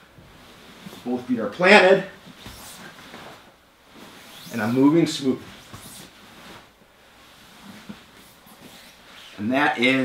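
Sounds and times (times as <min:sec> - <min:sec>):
rustling of cloth: 0:00.0 - 0:10.0
soft bumps: 0:02.2 - 0:06.8
bodies shifting on foam mat: 0:02.2 - 0:09.4.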